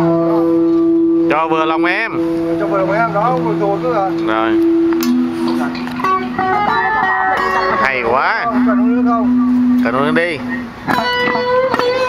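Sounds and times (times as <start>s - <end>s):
guitar picking melody: 0.0s - 12.0s.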